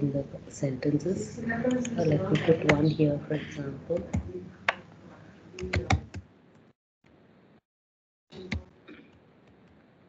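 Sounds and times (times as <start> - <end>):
typing on computer keyboard: 5.6 - 6.2.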